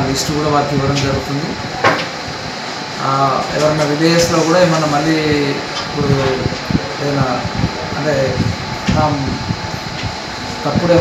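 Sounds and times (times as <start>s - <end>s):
man speaking: 0.0s - 1.6s, 3.0s - 9.4s, 10.6s - 11.0s
room noise hum: 0.0s - 11.0s.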